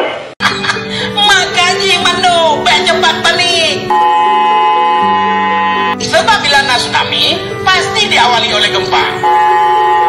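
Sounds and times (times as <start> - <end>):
background music: 0.4 - 10.0
two-tone alert signal: 3.9 - 6.0, 9.1 - 10.0.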